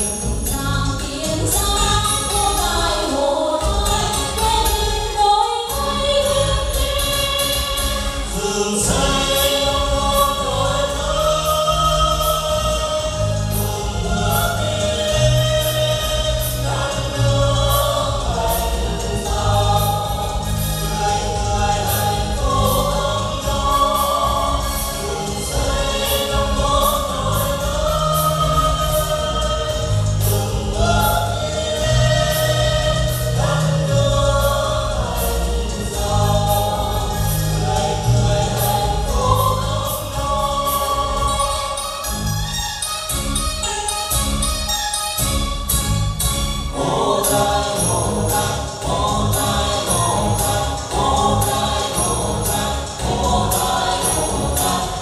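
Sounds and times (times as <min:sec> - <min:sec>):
men and women singing: 0:00.0 - 0:42.3, 0:46.7 - 0:55.0
amplified music with beat and bass: 0:05.8 - 0:55.0.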